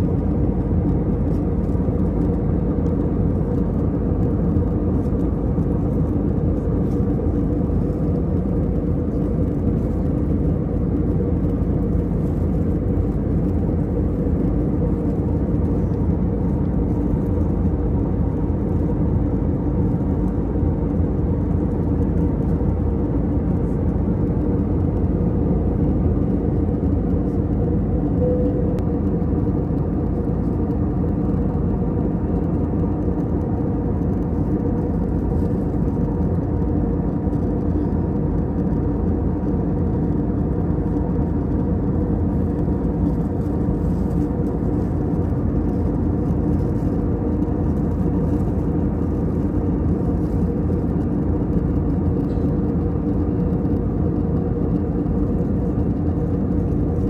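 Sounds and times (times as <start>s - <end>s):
jet engine and airflow rush: 0.0s - 57.0s
low hum: 0.0s - 57.0s.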